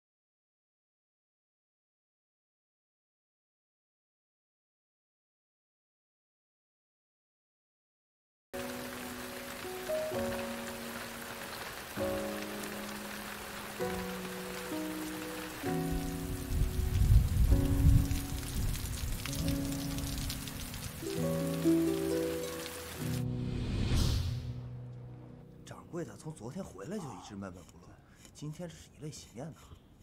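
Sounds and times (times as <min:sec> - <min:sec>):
steady rain falling: 0:08.6 - 0:23.3
slow music of held chords: 0:08.6 - 0:23.7, 0:24.4 - 0:25.8.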